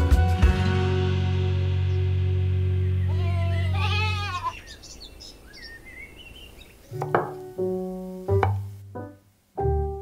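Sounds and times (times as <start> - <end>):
piano music: 0.0 - 3.2, 6.9 - 10.0
goat bleating: 3.1 - 4.7.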